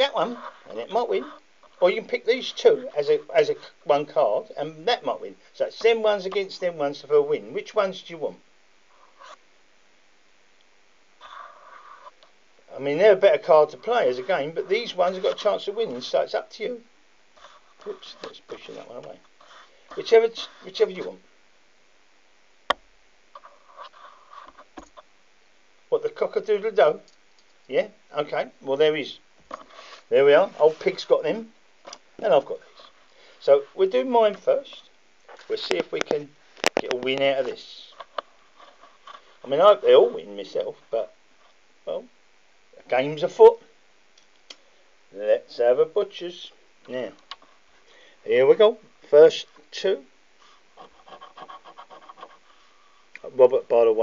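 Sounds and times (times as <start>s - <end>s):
coin scratching a scratchcard: 50.8s - 52.4s.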